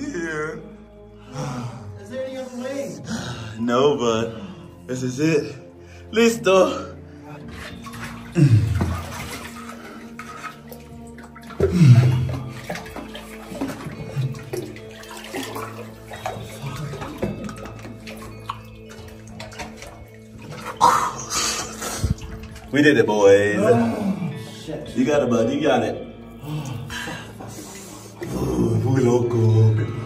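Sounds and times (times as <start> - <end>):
background music: 0.0 - 30.0
water sloshing and splashing: 6.8 - 29.1.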